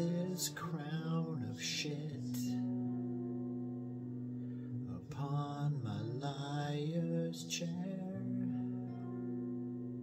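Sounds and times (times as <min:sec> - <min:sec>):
man singing in low voice: 0:00.0 - 0:03.0, 0:04.8 - 0:08.9.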